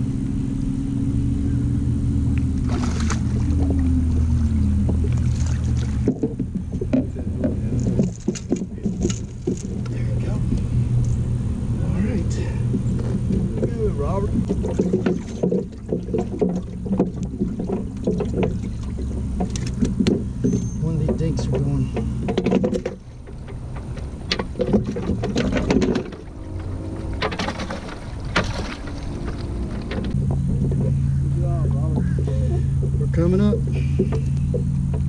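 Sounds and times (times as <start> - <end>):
boat motor idling: 0.0 - 35.0
sharp knocks on boat: 2.6 - 10.6, 12.7 - 31.0.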